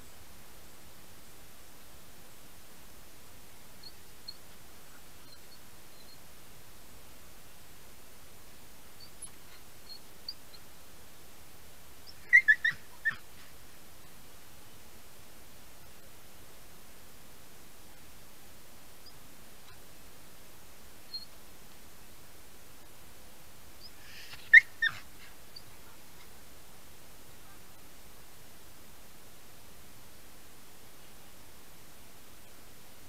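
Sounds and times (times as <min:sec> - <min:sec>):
faint high chirps: 0:03.8 - 0:06.3, 0:09.0 - 0:10.7, 0:12.0 - 0:13.3, 0:21.1 - 0:21.4
animal yelping calls: 0:12.1 - 0:13.3, 0:23.8 - 0:25.7.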